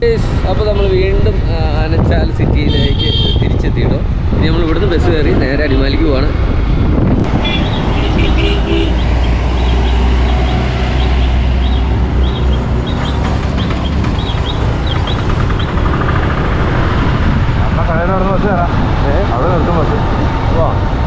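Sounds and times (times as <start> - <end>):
street traffic: 0.0 - 21.0
wind rumble on microphone: 0.0 - 21.0.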